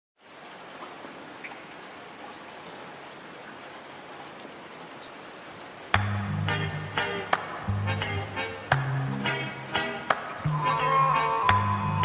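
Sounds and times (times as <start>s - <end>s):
steady rain: 0.2s - 12.0s.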